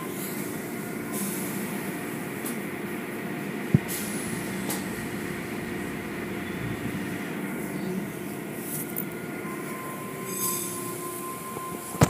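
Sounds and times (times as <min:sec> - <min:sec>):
car-wash machinery hum: 0:00.5 - 0:10.3
thin steady whine: 0:02.9 - 0:12.0
high squeal: 0:09.5 - 0:12.0.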